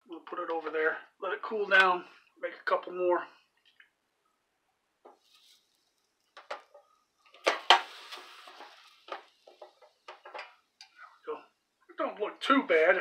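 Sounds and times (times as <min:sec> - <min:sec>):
hiss of dough pressed on hot plate: 0:05.1 - 0:11.2.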